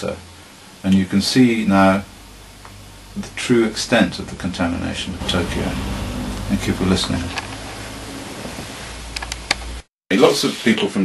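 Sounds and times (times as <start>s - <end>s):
background hiss: 0.0s - 11.0s
low hum: 0.3s - 9.9s.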